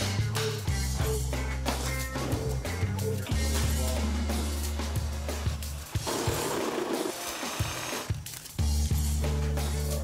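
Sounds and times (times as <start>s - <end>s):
background music: 0.0s - 10.0s
power tool running: 5.2s - 8.2s.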